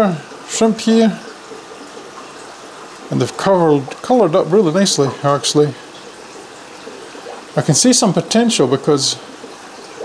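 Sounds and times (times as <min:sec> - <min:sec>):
bubbling trickling water: 0:00.0 - 0:10.0.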